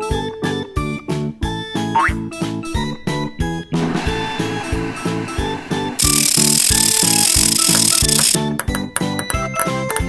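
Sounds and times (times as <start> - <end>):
cartoon machine sound effect: 6.0 - 8.4
small balls ticking and plinking: 6.0 - 10.0.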